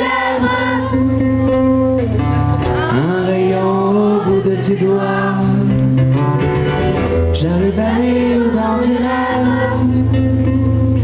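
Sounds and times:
live band playing: 0.0s - 11.0s
man singing long notes: 2.8s - 5.9s, 7.3s - 11.0s.

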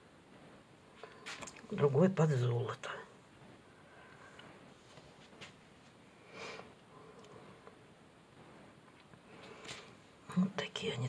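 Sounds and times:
woman speaking: 10.3s - 11.0s.

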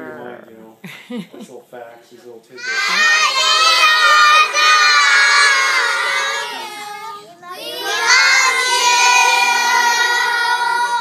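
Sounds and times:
children shouting in unison: 2.6s - 11.0s.

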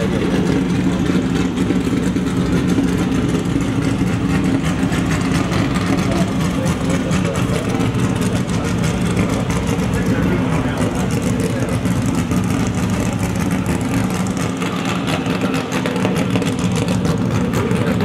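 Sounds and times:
busy outdoor background: 0.0s - 18.0s
car engines running: 0.0s - 18.0s.

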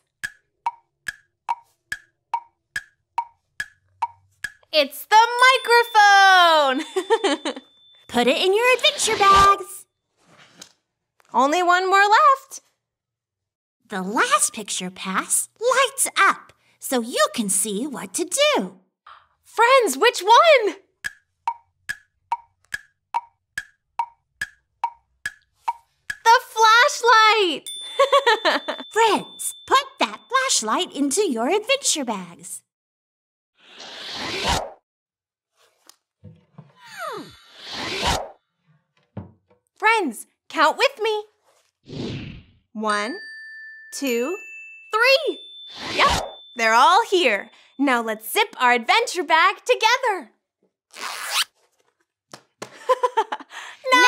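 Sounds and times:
wood-block tick-tock knocks: 0.1s - 4.7s, 21.0s - 26.3s
woman speaking: 4.8s - 9.8s, 11.4s - 12.6s, 13.9s - 18.8s, 19.6s - 20.8s, 26.3s - 27.7s, 28.5s - 32.6s, 39.8s - 41.3s, 42.8s - 43.2s, 44.0s - 44.4s, 45.0s - 45.4s, 46.0s - 50.3s, 53.7s - 54.0s.

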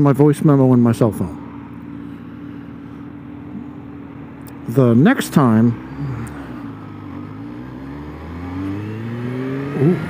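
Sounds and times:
motorcycle engine accelerating: 2.8s - 10.0s.

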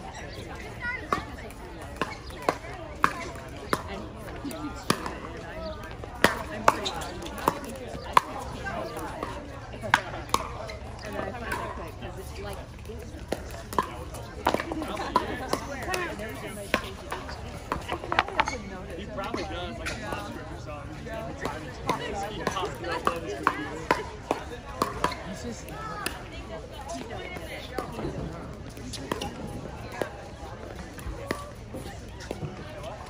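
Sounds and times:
murmur of voices: 0.0s - 33.0s
paddles striking balls: 1.0s - 20.4s, 21.2s - 26.4s, 27.0s - 33.0s.

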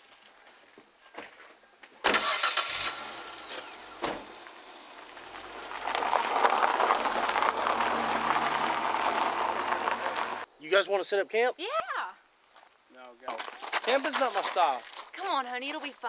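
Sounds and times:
tyres crunching over gravel: 2.2s - 10.5s, 12.5s - 16.0s
vehicle engine idling: 2.2s - 10.5s.

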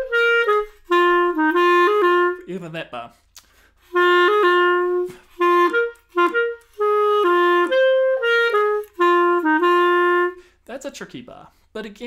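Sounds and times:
clarinet playing jazz waltz: 0.0s - 2.8s, 3.8s - 10.5s.

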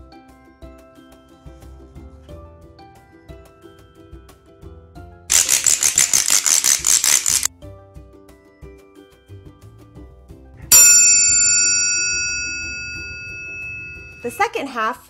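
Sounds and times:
quiet background music: 0.0s - 11.6s, 12.2s - 15.0s
rapid rattle: 5.3s - 7.5s
metal triangle strike ringing: 10.7s - 14.6s.

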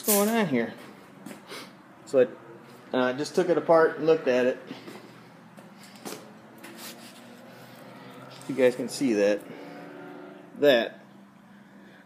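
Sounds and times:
rubbing and rustling on wooden shelf: 5.6s - 8.6s.

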